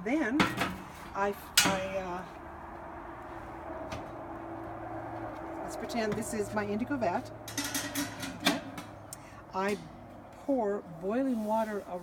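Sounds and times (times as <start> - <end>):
metal pot clunk: 7.4 - 9.0.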